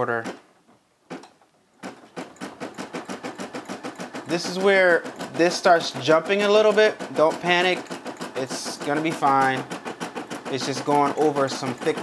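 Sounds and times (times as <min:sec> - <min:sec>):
embroidery machine stitching: 0:01.1 - 0:12.0.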